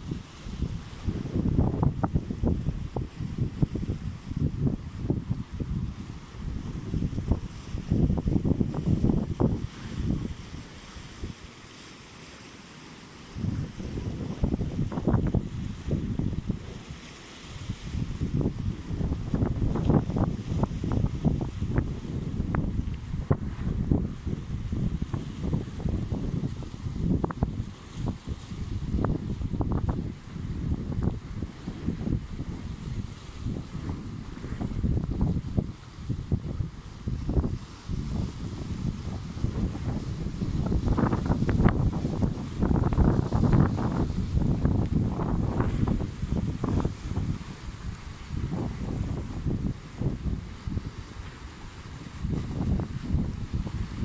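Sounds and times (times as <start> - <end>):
wind buffeting microphone: 0.0 - 11.4, 13.4 - 54.0
small waves breaking on rocks: 0.0 - 54.0.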